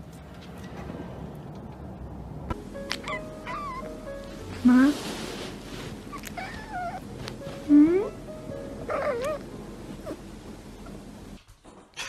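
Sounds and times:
background music: 2.5 - 11.4
cat meowing: 3.0 - 3.9, 6.1 - 7.0, 8.9 - 9.4.

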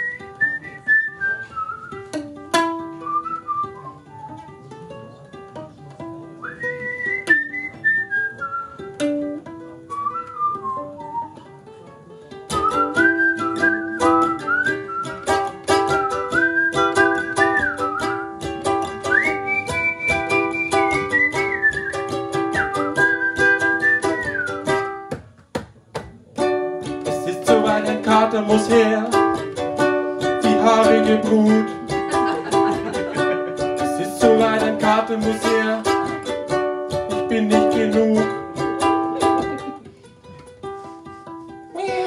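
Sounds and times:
whistled melody: 0.0 - 2.2, 2.9 - 4.6, 6.4 - 9.0, 9.8 - 11.4, 12.5 - 24.8
ukulele strumming: 0.0 - 42.0.

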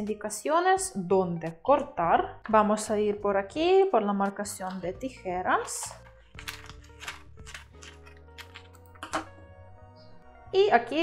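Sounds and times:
soft background music: 0.0 - 11.0
scissors snipping paper: 5.8 - 8.7.

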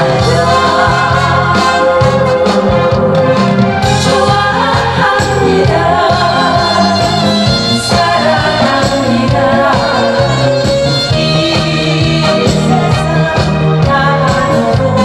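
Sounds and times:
instrumental accompaniment: 0.0 - 15.0
woman singing into microphone: 0.0 - 15.0.

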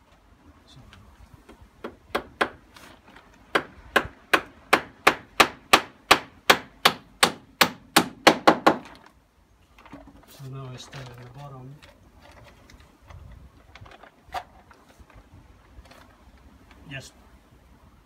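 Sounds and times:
hammer driving nail into wood: 3.5 - 8.9.

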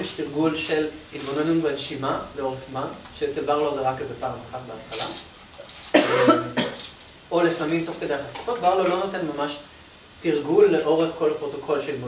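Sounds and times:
man coughing: 5.9 - 6.9.

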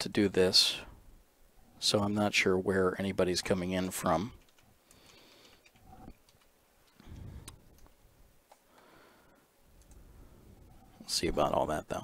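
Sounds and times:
soft clicks: 4.4 - 10.1.

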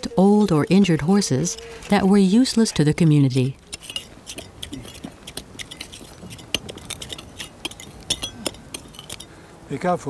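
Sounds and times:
metal tools scraping gravelly soil: 0.2 - 9.4.

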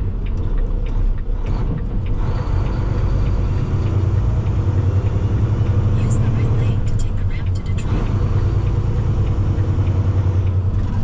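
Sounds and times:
diesel truck engine drone: 0.0 - 11.0
road noise: 0.0 - 11.0.

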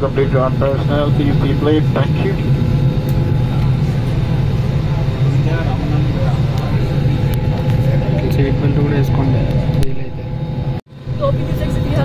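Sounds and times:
airliner cabin hum: 0.0 - 12.0
passengers talking faintly: 0.2 - 10.3.

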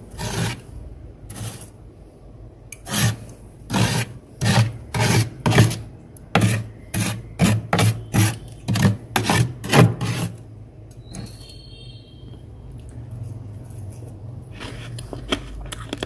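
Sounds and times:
metal spoon scraping frost: 0.0 - 1.8, 2.7 - 10.4.

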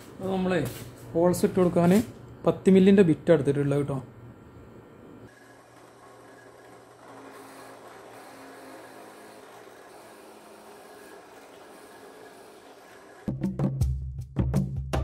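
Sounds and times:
drill press humming: 4.1 - 13.3.

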